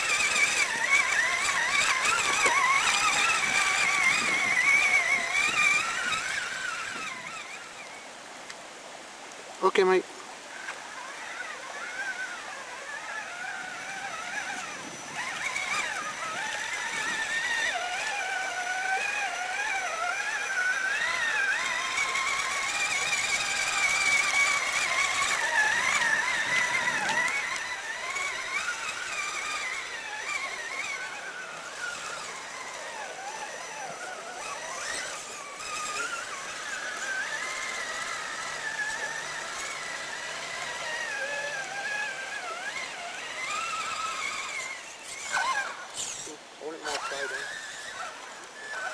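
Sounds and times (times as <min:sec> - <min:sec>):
rc car motor whining: 0:00.0 - 0:48.9.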